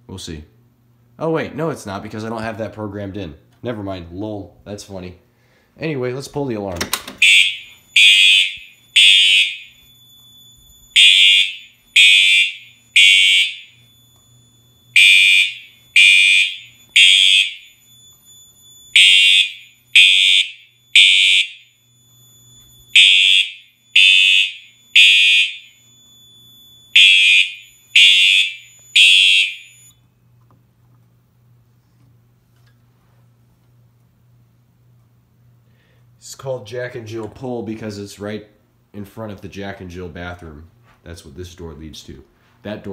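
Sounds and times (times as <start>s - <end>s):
faint electrical hum: 0.0s - 42.9s
fire alarm horn blasts: 7.2s - 30.0s.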